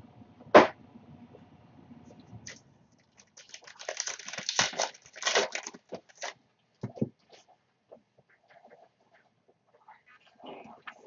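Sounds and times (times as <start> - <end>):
foil wrapper tearing and crinkling: 2.5 - 6.4.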